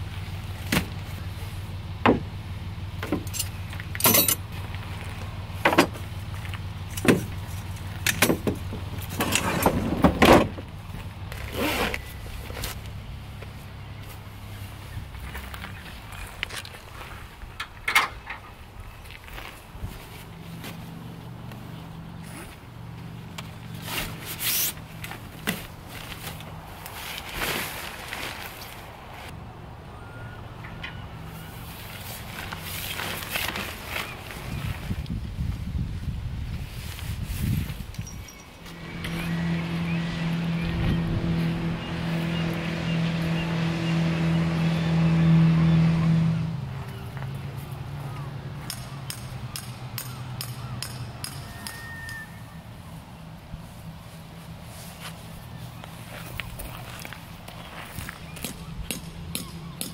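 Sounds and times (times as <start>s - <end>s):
tent poles knocking and clattering: 3.0s - 12.8s
stuff sacks rustling: 23.7s - 29.3s, 31.6s - 35.0s.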